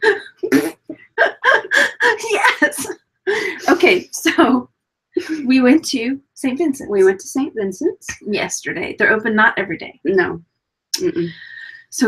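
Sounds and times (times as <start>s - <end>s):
woman laughing hard: 1.2s - 3.8s.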